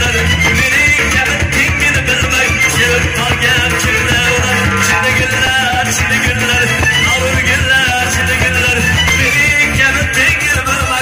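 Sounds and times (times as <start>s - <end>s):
live band music: 0.0s - 10.2s
drum kit beat: 0.2s - 10.4s.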